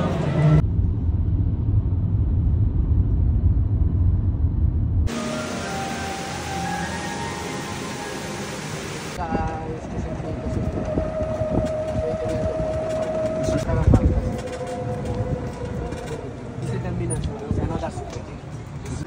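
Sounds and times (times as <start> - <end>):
low road rumble: 0.0 - 19.0
vehicle motor whine: 5.1 - 17.4.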